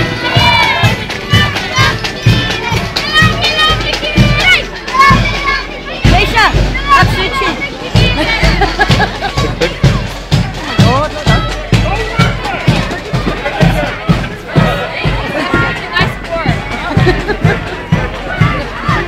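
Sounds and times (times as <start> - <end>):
crowd voices: 0.0 - 19.0
marching band playing: 0.0 - 19.0
steady drum beat: 0.0 - 19.0.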